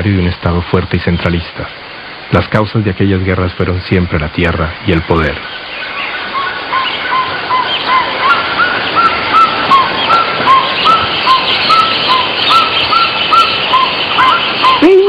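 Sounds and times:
steady background hiss: 0:00.0 - 0:15.0
chirping calls: 0:03.6 - 0:15.0.

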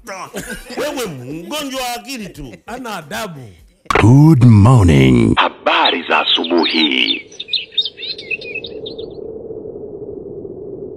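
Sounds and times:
birds chirping: 0:06.1 - 0:09.2.

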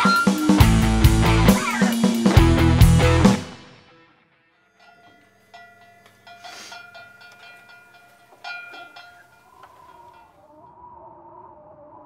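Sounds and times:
rock band playing: 0:00.0 - 0:03.9.

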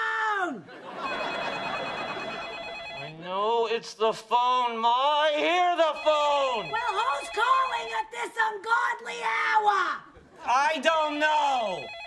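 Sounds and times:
telephone ringing: 0:00.8 - 0:03.2, 0:05.7 - 0:08.2, 0:11.4 - 0:12.0.

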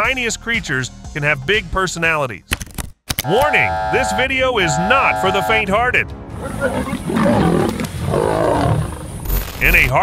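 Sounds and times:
big cats growling: 0:06.4 - 0:09.3.

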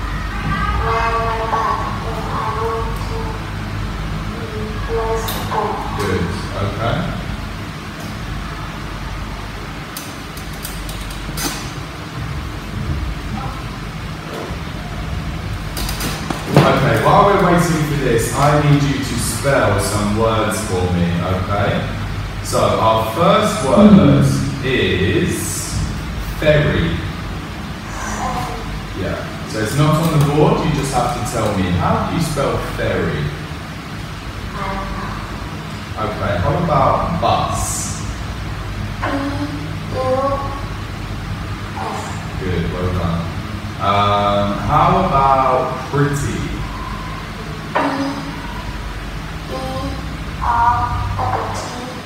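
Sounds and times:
low hum: 0:00.0 - 0:52.0
faint murmuring: 0:16.6 - 0:25.8, 0:27.8 - 0:33.2, 0:41.7 - 0:52.0.

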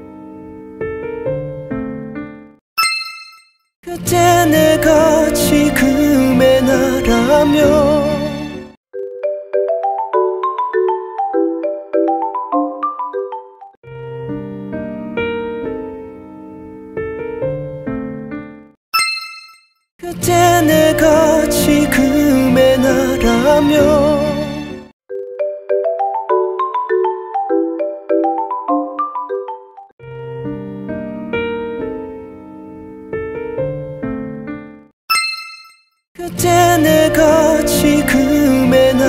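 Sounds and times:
piano music: 0:00.0 - 0:02.6, 0:04.0 - 0:08.8, 0:09.6 - 0:18.8, 0:20.2 - 0:24.9, 0:26.1 - 0:34.9, 0:36.3 - 0:39.0
slow piano music: 0:00.0 - 0:02.6, 0:13.8 - 0:18.8, 0:30.0 - 0:34.9
bright bell-like ding chime: 0:02.8 - 0:03.7, 0:19.0 - 0:19.9, 0:35.1 - 0:36.0.

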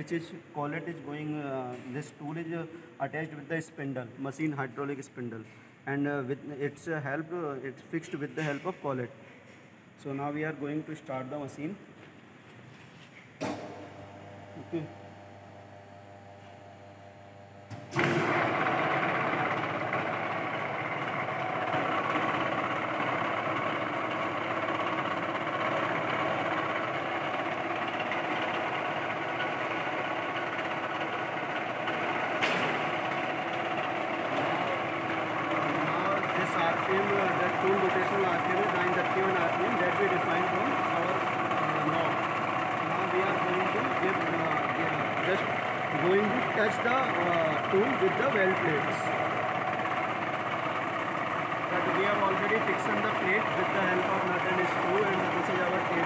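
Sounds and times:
welding machine motor running: 0:13.5 - 0:56.0.

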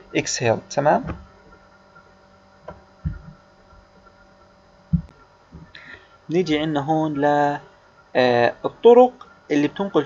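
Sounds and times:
faint electrical hum: 0:00.0 - 0:10.0
steady tones: 0:00.0 - 0:10.0
short low thumps: 0:02.6 - 0:04.0, 0:04.8 - 0:05.8.

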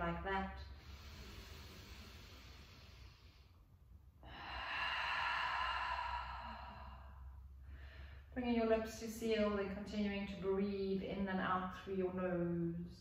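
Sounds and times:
woman breathing deeply: 0:00.6 - 0:08.4.

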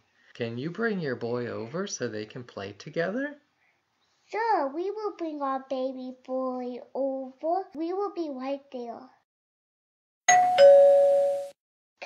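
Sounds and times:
two-note doorbell chime: 0:10.3 - 0:11.6.

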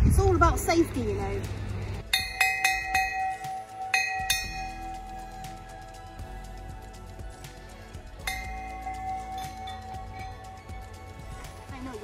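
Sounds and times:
warning bell ringing: 0:02.0 - 0:05.3, 0:08.2 - 0:11.3.

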